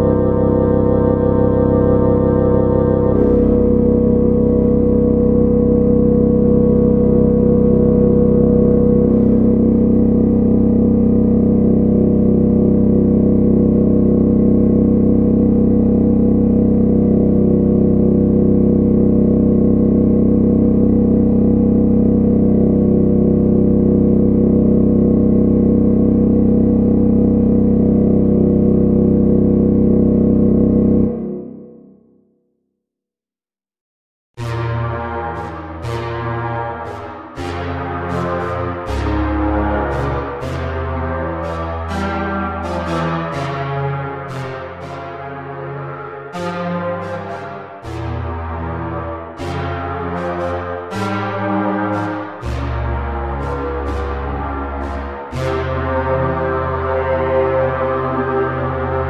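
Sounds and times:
sustained synthesizer chords: 0.0s - 32.3s, 34.4s - 59.0s.

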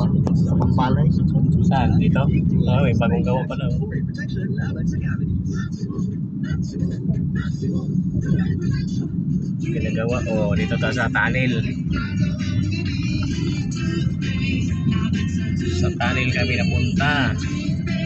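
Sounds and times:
engine and road noise: 0.0s - 18.0s
indistinct voices: 0.0s - 18.0s.

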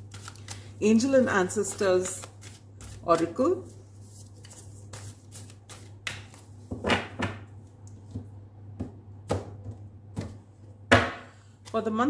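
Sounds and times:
cards shuffling: 0.0s - 3.4s, 4.0s - 6.6s.

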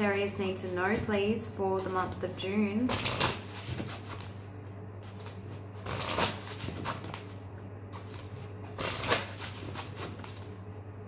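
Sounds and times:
low steady hum: 0.0s - 11.0s
cards being shuffled by hand: 0.1s - 10.6s.

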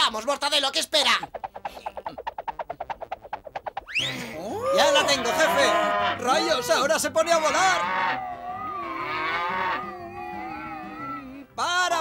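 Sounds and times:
cartoon cow mooing: 4.6s - 11.5s.

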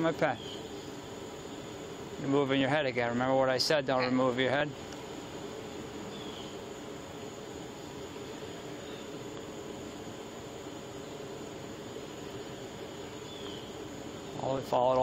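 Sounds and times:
outdoor background hum and hiss: 0.0s - 15.0s.

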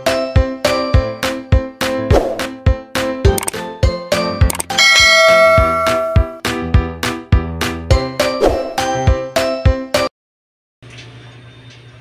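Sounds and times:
bell chime ding: 4.8s - 6.4s
upbeat music with drum beat: 5.0s - 9.3s.

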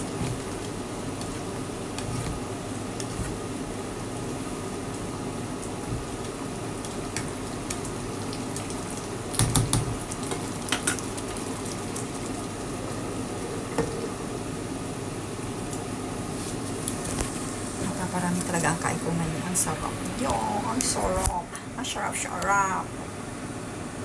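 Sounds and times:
pan simmering and bubbling: 0.0s - 24.0s.

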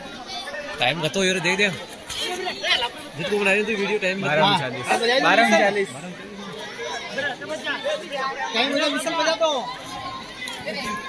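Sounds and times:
chatter of several voices: 0.0s - 11.0s.

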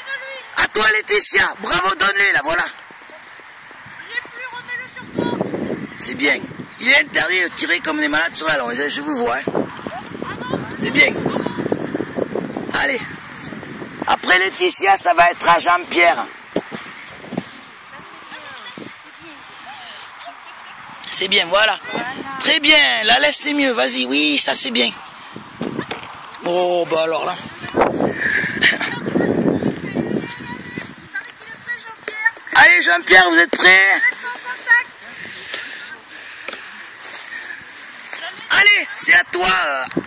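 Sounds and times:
faint distant voices: 14.0s - 39.9s.

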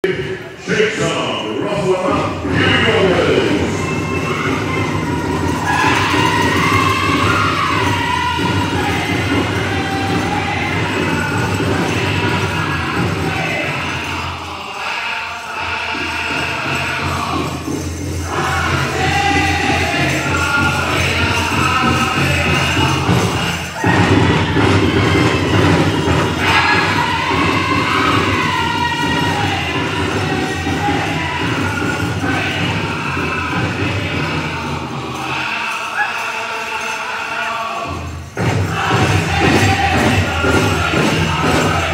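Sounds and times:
high-pitched group singing: 0.0s - 41.9s
big drum beaten in fast rhythm: 0.1s - 14.5s, 15.9s - 35.6s, 37.8s - 41.9s.

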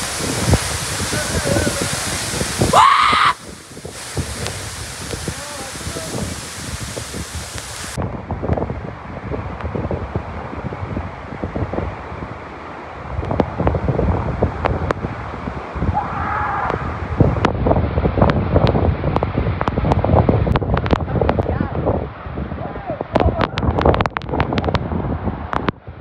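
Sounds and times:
waterfall rushing: 0.0s - 8.4s, 9.0s - 18.2s
wind buffeting microphone: 0.0s - 26.0s.

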